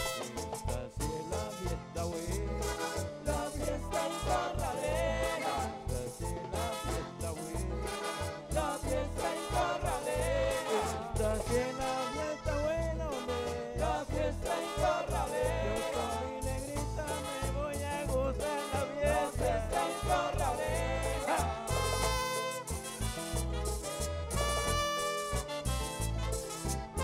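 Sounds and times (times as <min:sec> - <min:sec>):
accordion-led band music: 0:00.0 - 0:27.0
percussion bass beat: 0:00.0 - 0:27.0
voices singing: 0:02.3 - 0:22.7.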